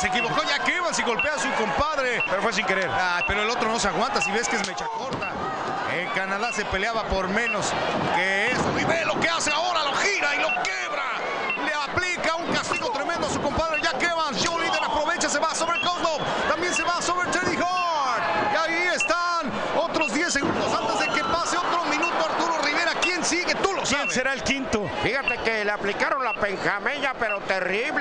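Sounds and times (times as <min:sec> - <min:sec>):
crowd noise: 0:00.0 - 0:28.0
voices talking: 0:00.0 - 0:28.0.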